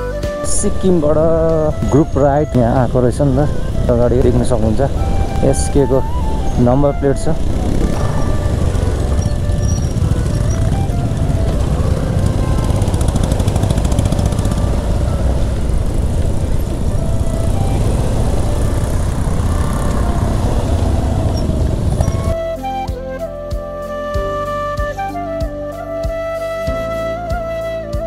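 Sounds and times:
wind rush on microphone: 0.4 - 22.5
motorcycle engine running: 0.6 - 22.4.

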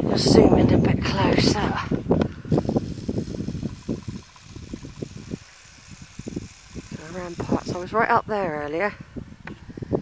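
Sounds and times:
wind buffeting microphone: 0.0 - 10.0
camera zoom motor whine: 2.4 - 8.3.

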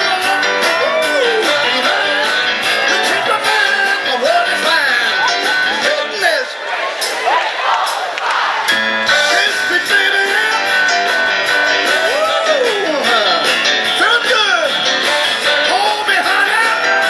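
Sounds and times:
live band with guitar: 0.0 - 17.0.

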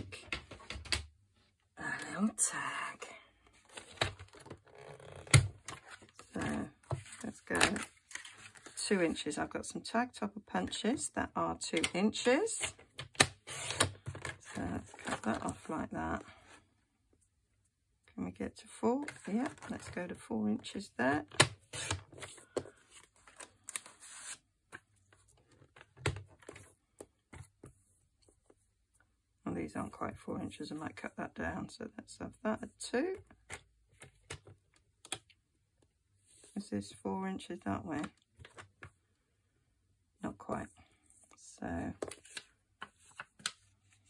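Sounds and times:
paper sliding rustle: 21.7 - 24.4.

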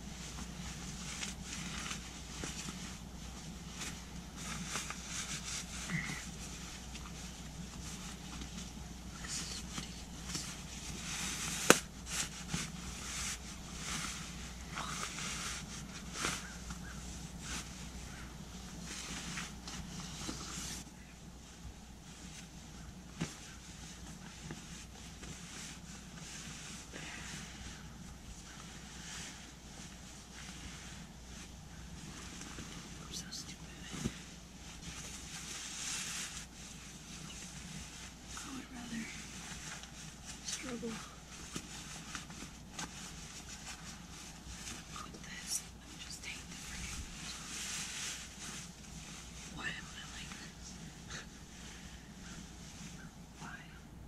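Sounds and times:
synthetic fabric rustling and scraping: 0.0 - 53.8.

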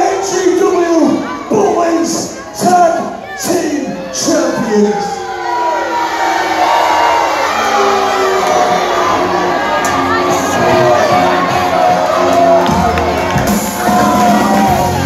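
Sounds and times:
crowd cheering and shouting: 0.0 - 15.0
music over speakers: 8.2 - 15.0.

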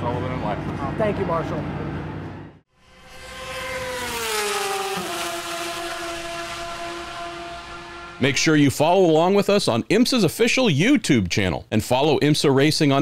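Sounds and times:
racing car engine: 0.0 - 8.9.

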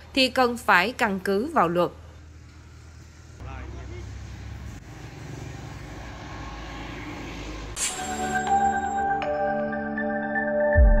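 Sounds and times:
vehicle rumble: 0.9 - 9.3.

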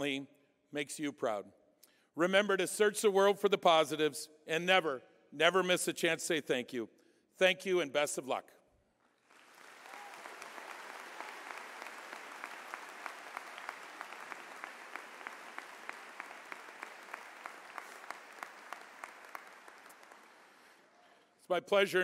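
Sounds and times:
audience applauding: 9.2 - 20.9.

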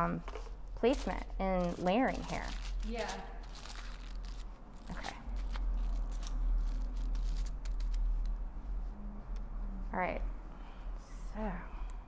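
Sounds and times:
steady low hum: 0.0 - 12.0
foil crinkling: 0.9 - 8.2.

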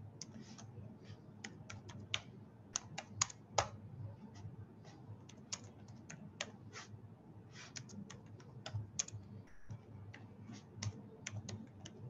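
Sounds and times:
keyboard keystroke clicks: 1.4 - 3.8.

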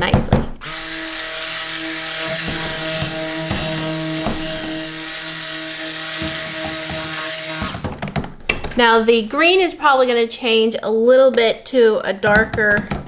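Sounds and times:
stick blender motor running: 0.6 - 7.9.

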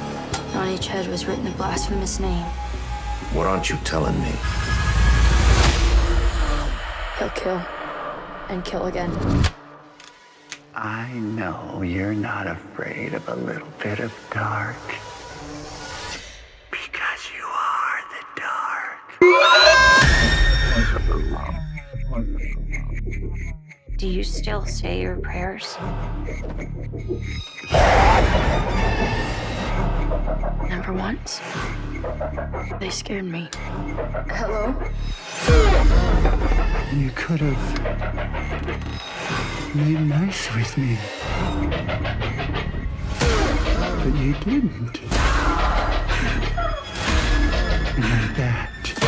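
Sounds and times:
person whispering: 16.7 - 19.2.

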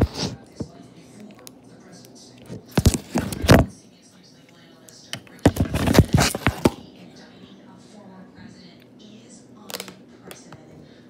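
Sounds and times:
camera handling thumps and rubbing: 5.5 - 6.8.

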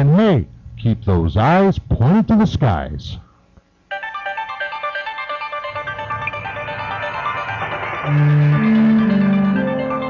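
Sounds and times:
bright repeated notes: 3.9 - 10.0
low bass part: 6.0 - 10.0.

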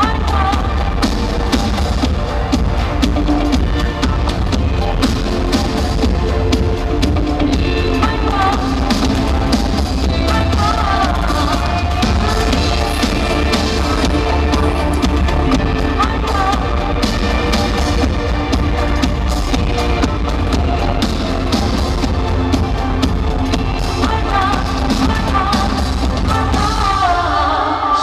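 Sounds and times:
woman singing: 0.0 - 2.3, 3.5 - 22.6, 23.5 - 28.0
electronic pop music: 0.0 - 28.0.

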